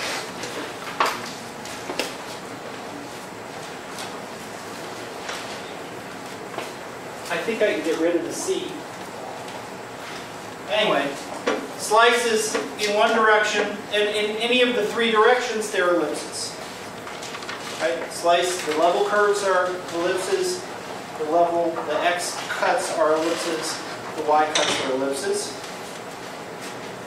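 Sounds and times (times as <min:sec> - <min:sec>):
man speaking: 0:07.3 - 0:08.9, 0:10.7 - 0:16.6, 0:17.8 - 0:25.6
man talking: 0:07.3 - 0:08.9, 0:10.7 - 0:16.6, 0:17.8 - 0:25.6.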